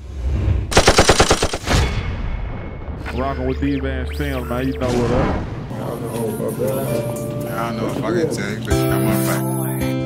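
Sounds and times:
automatic gunfire: 0.7s - 1.7s.

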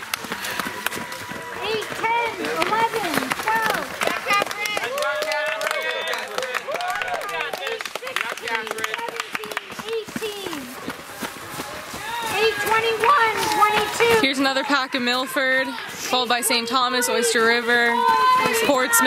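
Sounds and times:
girls shouting and cheering: 0.0s - 6.0s, 11.9s - 19.0s
runners footsteps on trail: 0.0s - 19.0s.

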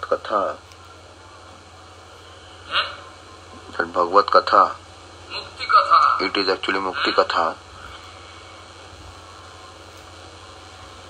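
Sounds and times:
low hum: 0.0s - 11.0s
steady hiss: 0.0s - 11.0s.

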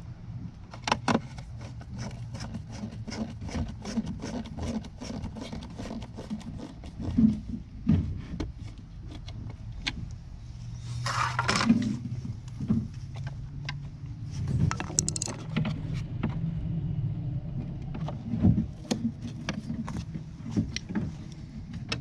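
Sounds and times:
screwdriver clicking: 14.7s - 15.4s.

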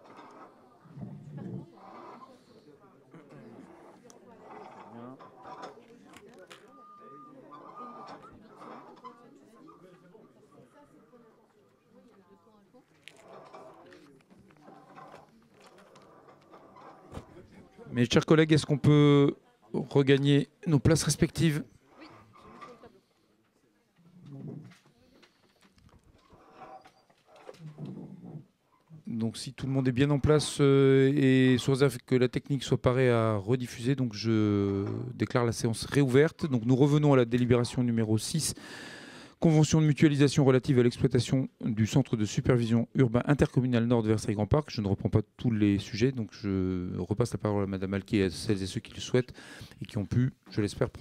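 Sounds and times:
background chatter: 0.0s - 43.6s
murmur of people talking: 0.0s - 51.0s.

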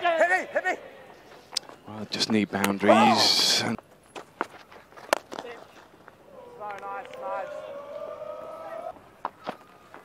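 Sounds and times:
crowd sustained cry: 6.3s - 9.0s.

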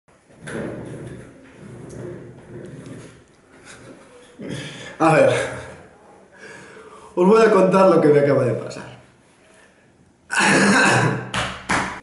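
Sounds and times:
man clearing throat: 10.3s - 11.3s
man coughing: 10.3s - 11.3s.

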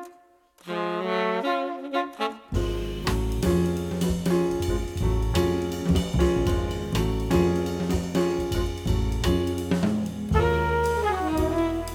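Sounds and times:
trumpet and saxophone chord: 0.0s - 2.9s, 10.3s - 11.9s.

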